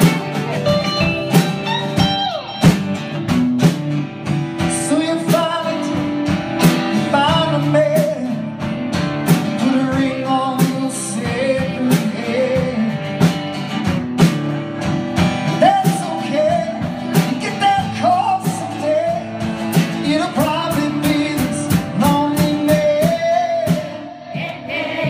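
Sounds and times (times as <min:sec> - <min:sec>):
second guitar playing: 0:00.0 - 0:25.0
strummed acoustic guitar: 0:00.0 - 0:25.0
man singing: 0:04.6 - 0:13.5, 0:15.4 - 0:24.3.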